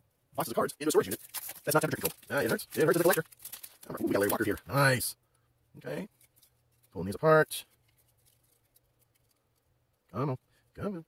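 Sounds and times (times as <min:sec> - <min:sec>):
cards being pulled apart: 0:01.0 - 0:04.6.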